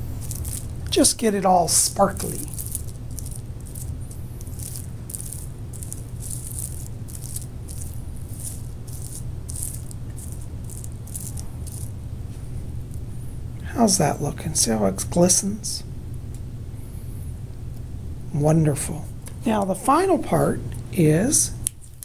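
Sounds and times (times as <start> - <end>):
glitter rasping: 0.0 - 13.9
steady low hum: 0.0 - 22.0.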